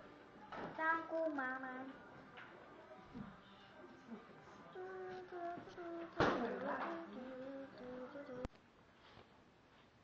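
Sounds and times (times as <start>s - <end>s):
person humming: 4.1s - 8.5s.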